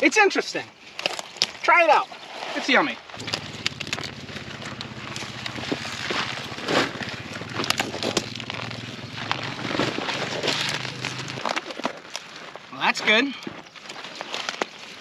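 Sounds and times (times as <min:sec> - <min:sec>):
leaves and stems rustling and snapping: 0:00.9 - 0:01.7, 0:02.3 - 0:12.7, 0:13.7 - 0:15.0
steady low hum: 0:03.2 - 0:11.4.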